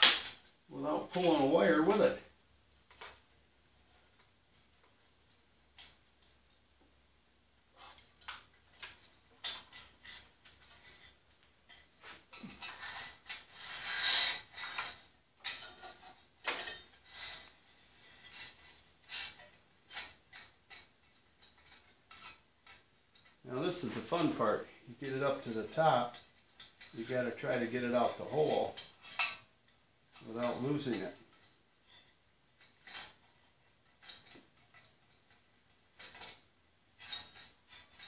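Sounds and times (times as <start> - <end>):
scraping rustle of cable: 0.0 - 2.3, 7.7 - 38.0
light metal clinks and knocks: 7.7 - 38.0.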